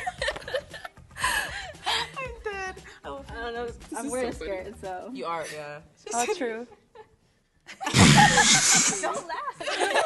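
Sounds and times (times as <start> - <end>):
women laughing and gasping: 0.0 - 2.3, 7.0 - 10.0.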